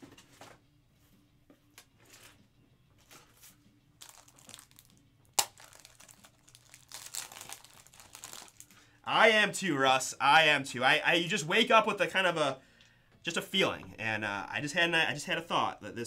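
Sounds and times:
packaging crinkling and rustling: 3.0s - 8.8s.

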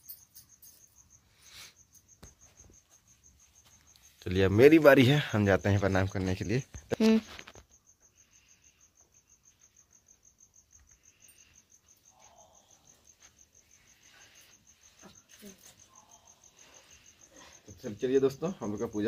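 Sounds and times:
cricket chirping: 0.0s - 19.0s.

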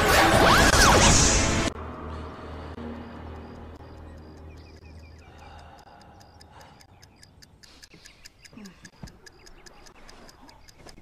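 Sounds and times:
low music drone: 0.0s - 6.6s
clock ticking: 3.0s - 11.0s.

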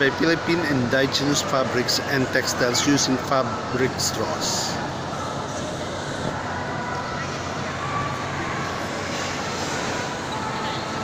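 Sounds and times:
faint distant voices: 0.0s - 11.0s
rushing hum of mall: 0.0s - 11.0s.

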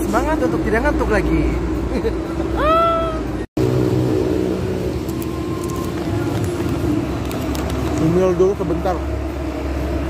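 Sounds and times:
motor vehicles rumbling: 0.0s - 10.0s
chip bag crackling: 5.1s - 8.2s.

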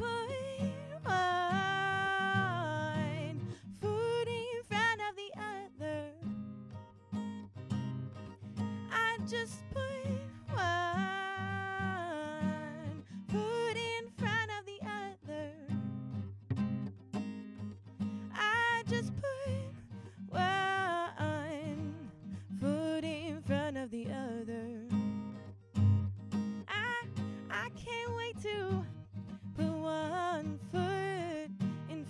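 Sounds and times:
woman singing: 0.0s - 6.4s, 8.8s - 15.9s, 18.2s - 25.3s, 26.6s - 32.0s
acoustic guitar strumming: 0.0s - 32.0s.

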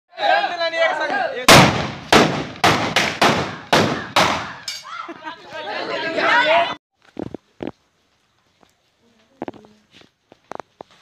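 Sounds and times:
voices: 0.1s - 1.5s, 3.5s - 6.8s
pipe gun firecracker bangs: 1.5s - 4.6s.

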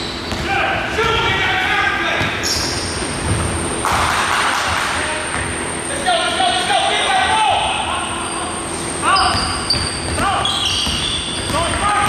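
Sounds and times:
basketball dribbled on gym floor: 0.3s - 1.2s, 5.2s - 5.6s, 9.2s - 12.0s
voices talking: 3.8s - 12.0s.

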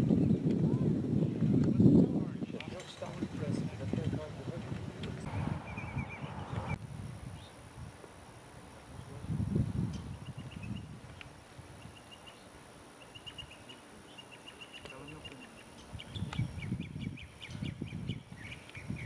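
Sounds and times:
bird chirping: 5.3s - 6.8s, 9.9s - 19.0s.

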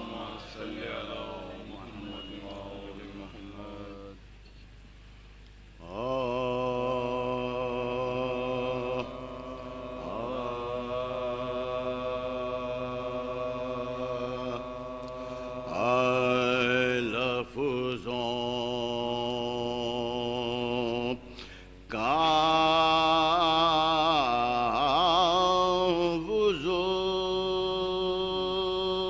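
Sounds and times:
male voices chanting: 0.0s - 4.2s, 5.8s - 21.2s.

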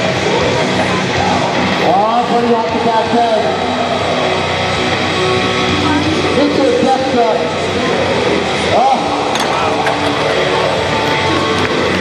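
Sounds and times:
loud music: 0.0s - 12.0s.

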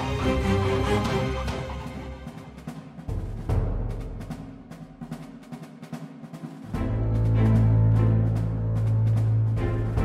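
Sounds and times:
background music with drums: 0.0s - 10.0s.

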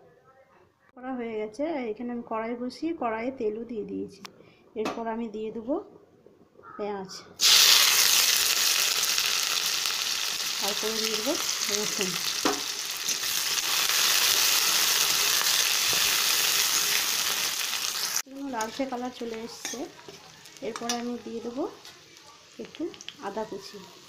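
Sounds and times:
onions sizzling in hot oil: 7.4s - 24.0s.

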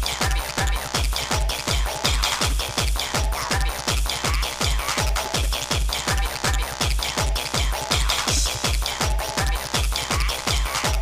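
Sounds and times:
deep kick drums: 0.0s - 11.0s
fast electronic dance music: 0.0s - 11.0s.

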